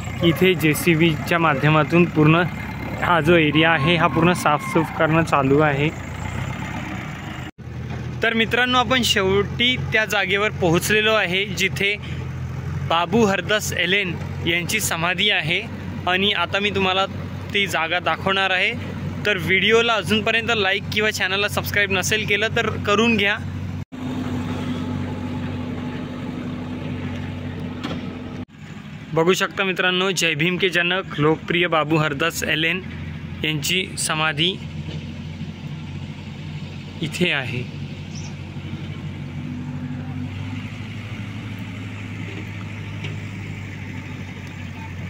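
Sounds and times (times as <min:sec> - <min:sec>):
engine humming: 0:00.0 - 0:45.0.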